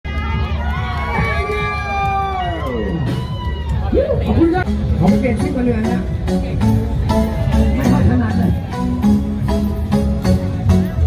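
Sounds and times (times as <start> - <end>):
low bass beat: 0.4 - 11.0.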